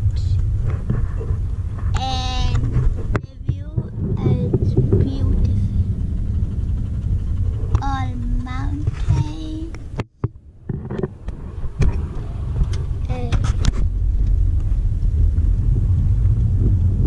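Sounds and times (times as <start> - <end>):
car road and engine rumble: 0.0 - 17.0.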